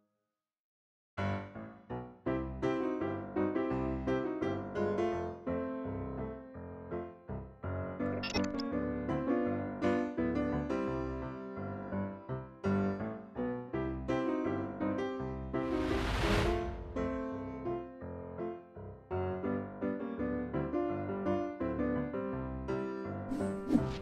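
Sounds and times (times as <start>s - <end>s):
piano music: 1.2s - 24.0s.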